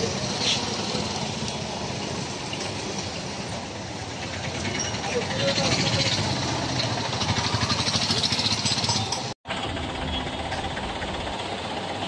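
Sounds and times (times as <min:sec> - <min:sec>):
road traffic engines: 0:00.0 - 0:12.0
rapid pulsing engine: 0:03.7 - 0:12.0.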